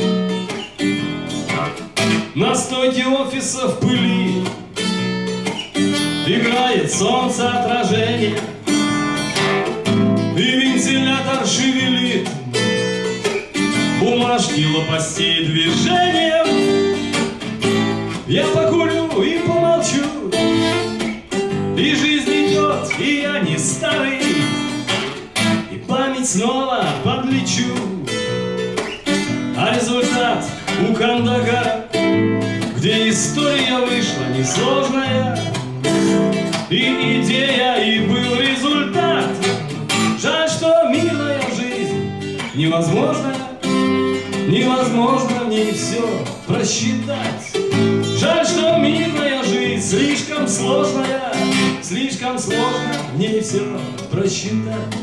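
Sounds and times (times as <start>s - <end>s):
strummed acoustic guitar: 0.0s - 55.0s
man singing: 1.5s - 5.0s, 6.0s - 9.0s, 10.1s - 28.5s, 29.5s - 55.0s.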